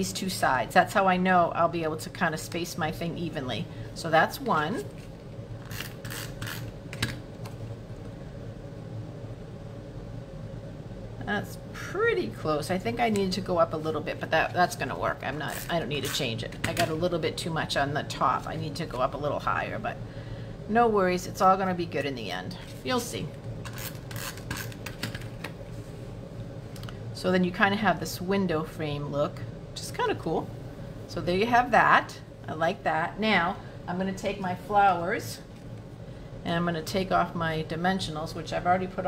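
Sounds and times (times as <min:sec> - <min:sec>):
faint low hum: 0:00.0 - 0:39.0.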